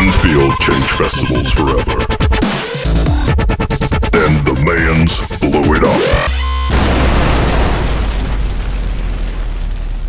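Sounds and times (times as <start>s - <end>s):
explosion boom with rumble: 6.7s - 10.0s.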